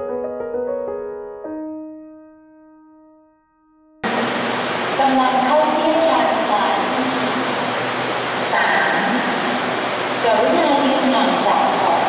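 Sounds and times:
piano music: 0:00.0 - 0:08.2
person speaking: 0:04.0 - 0:07.4, 0:10.2 - 0:12.0
electric train rushing: 0:04.0 - 0:12.0.

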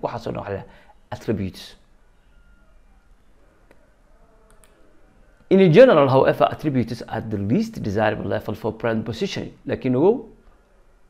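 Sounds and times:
low room hiss: 0:00.0 - 0:11.0
faint computer clicks: 0:04.4 - 0:04.8.

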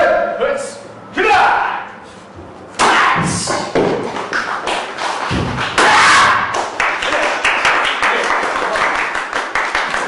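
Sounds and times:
kicks striking boards: 0:02.8 - 0:04.4, 0:05.2 - 0:06.5.

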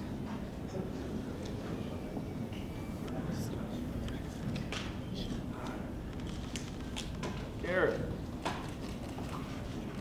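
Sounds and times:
hubbub of a crowded room: 0:00.0 - 0:10.0.

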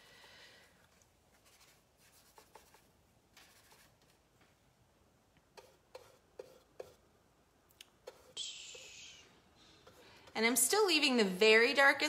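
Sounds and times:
paintbrush rubbing and tapping: 0:01.3 - 0:04.2, 0:05.5 - 0:07.0, 0:08.0 - 0:09.0.

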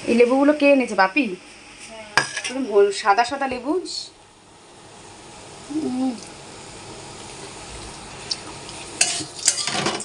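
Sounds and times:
metal bowl clink: 0:09.0 - 0:10.0.

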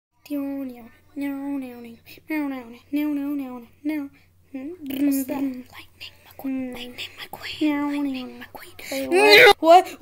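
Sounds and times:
high-pitched voice crying no: 0:09.1 - 0:09.6.

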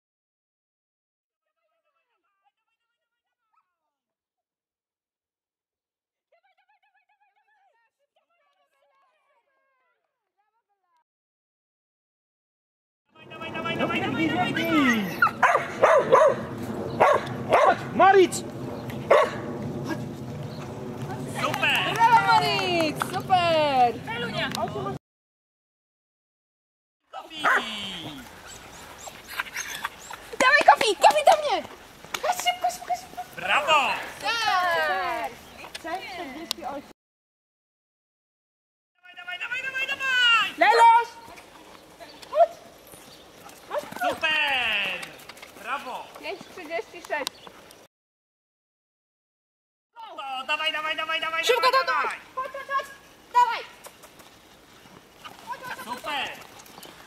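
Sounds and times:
people's voices: 0:13.2 - 0:25.0, 0:27.2 - 0:36.9
dogs barking and yelping: 0:14.4 - 0:18.0, 0:18.9 - 0:19.6, 0:27.3 - 0:31.5.

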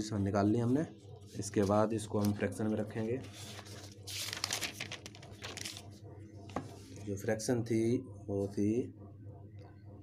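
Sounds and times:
paper rustling and crinkling: 0:01.4 - 0:07.1.

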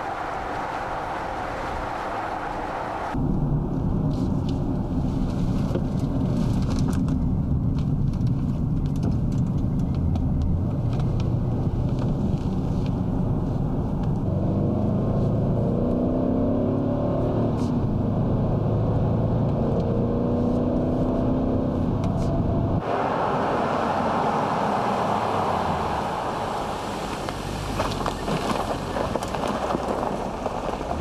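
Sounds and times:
tyre and road noise: 0:00.0 - 0:31.0
car engine accelerating: 0:09.6 - 0:31.0.

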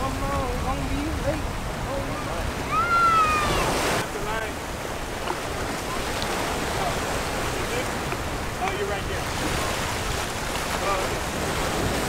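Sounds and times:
surf washing over rocks: 0:00.0 - 0:12.0
wind on microphone: 0:00.0 - 0:12.0
voices calling out: 0:01.2 - 0:10.1.

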